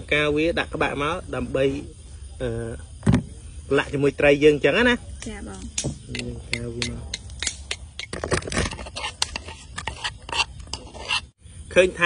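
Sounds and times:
metal spoon scraping mortar: 6.0 - 11.4.

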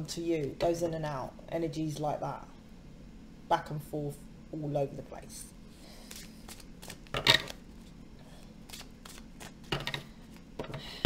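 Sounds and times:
cards shuffling: 6.0 - 7.9, 8.6 - 10.5.

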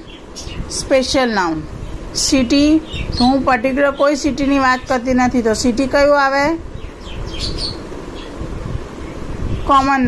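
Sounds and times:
bird chirping: 0.0 - 0.8, 1.9 - 5.0, 6.7 - 8.4
low background noise: 0.0 - 10.0.

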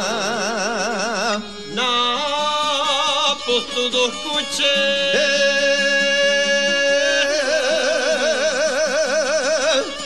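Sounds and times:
folk accompaniment: 0.0 - 10.0
folk singing with vibrato: 0.0 - 10.0.

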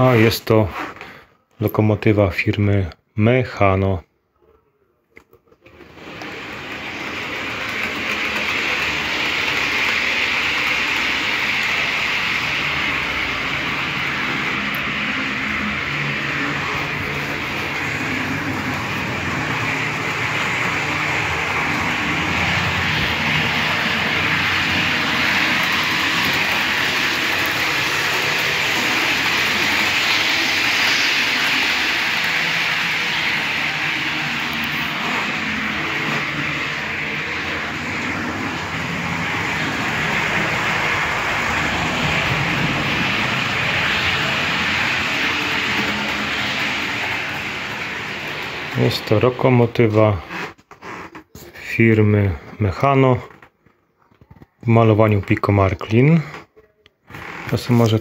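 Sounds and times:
train running noise: 5.6 - 50.5.

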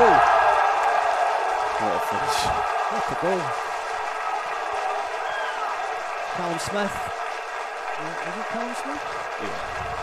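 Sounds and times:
stadium crowd noise: 0.0 - 10.0
commentator's voice: 8.0 - 10.0.

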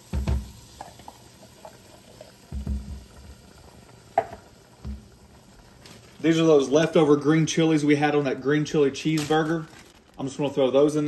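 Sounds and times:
faint sizzle: 0.0 - 11.0
beans plopping into pot: 4.1 - 6.0, 9.0 - 10.6.

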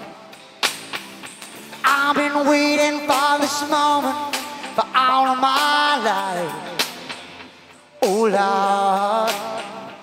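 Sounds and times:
man singing: 0.0 - 0.6, 1.8 - 10.0
faint band music: 0.0 - 10.0.

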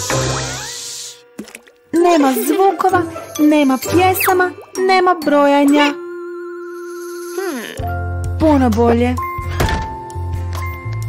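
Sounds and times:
door shutting thunk: 9.6 - 10.0.

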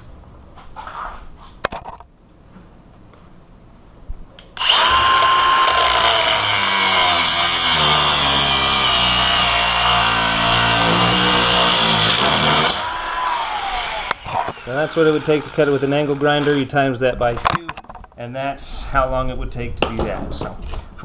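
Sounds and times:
angle grinder whining: 4.6 - 16.8.

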